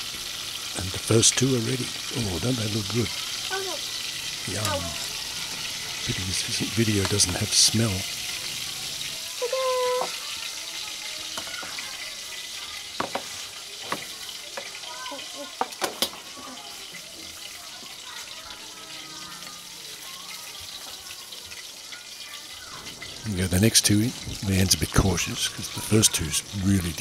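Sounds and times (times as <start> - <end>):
fish sizzling in oil: 0.0 - 27.0.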